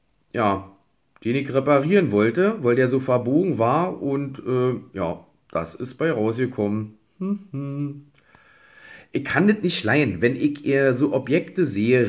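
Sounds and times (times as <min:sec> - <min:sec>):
man humming hmm: 0:07.1 - 0:08.2.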